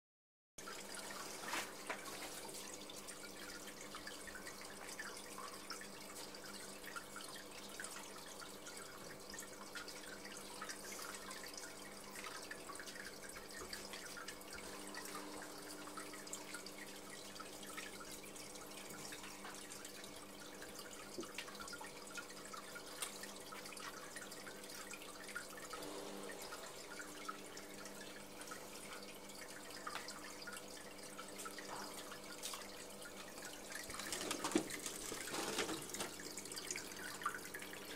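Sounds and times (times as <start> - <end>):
water trickling and dripping: 0.6 - 37.9.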